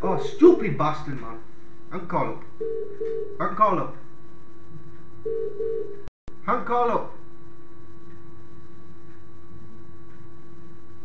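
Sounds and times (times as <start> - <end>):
steady low tone: 0.0 - 11.0
telephone ringing tone: 2.6 - 4.0, 5.2 - 6.1.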